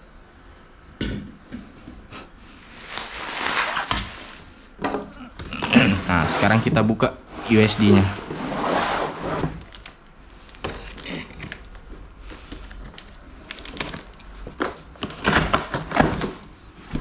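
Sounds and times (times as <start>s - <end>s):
cardboard rustling and scraping: 2.6s - 4.5s, 5.5s - 17.0s
cardboard tearing: 2.7s - 4.4s, 10.6s - 11.9s, 12.8s - 16.4s.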